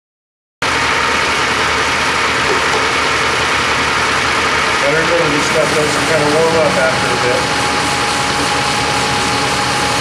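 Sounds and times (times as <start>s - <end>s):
grinding machine whirring: 0.6s - 10.0s.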